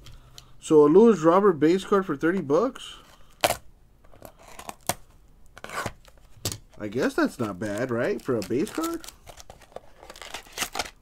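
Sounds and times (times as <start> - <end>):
papery rustle: 7.3 - 11.0.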